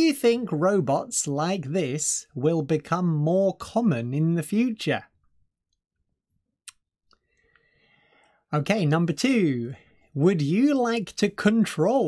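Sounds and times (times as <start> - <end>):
faint breathy sound: 7.2 - 8.5.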